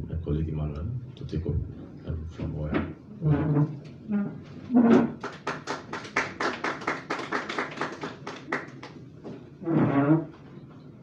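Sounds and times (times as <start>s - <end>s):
small audience applauding: 5.1s - 9.1s.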